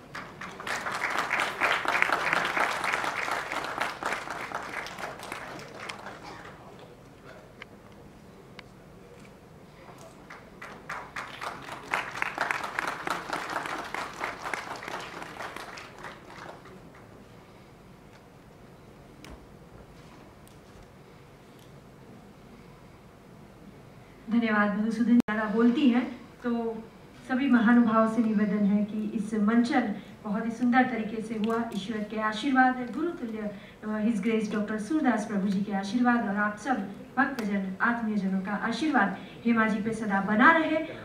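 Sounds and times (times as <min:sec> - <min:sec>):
audience applauding: 0:00.0 - 0:06.9, 0:10.2 - 0:17.1.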